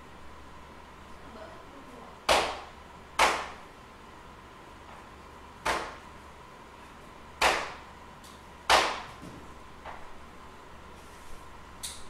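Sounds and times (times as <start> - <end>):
faint high hum: 0.0 - 12.0
sharp knocks with echo: 2.3 - 3.6, 5.6 - 6.0, 7.4 - 7.8, 8.7 - 9.1.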